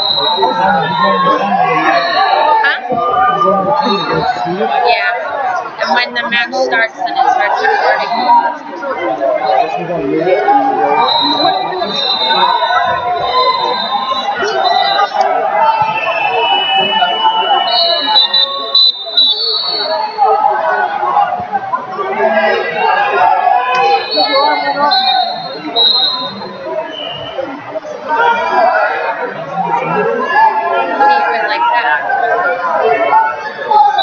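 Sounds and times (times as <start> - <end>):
chatter of voices: 0.0 - 34.0.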